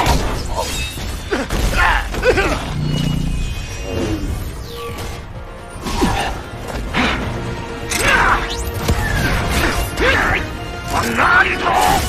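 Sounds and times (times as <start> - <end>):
background music: 0.0 - 12.0
swooping pitched sweeps: 2.6 - 5.3.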